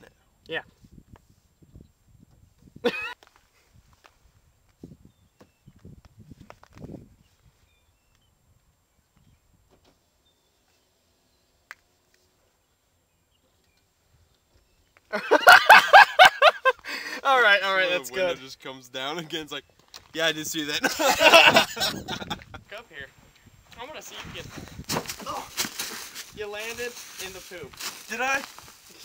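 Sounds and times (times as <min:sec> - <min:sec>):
loud laughter: 0:02.8 - 0:03.2, 0:15.1 - 0:17.0, 0:20.8 - 0:22.6.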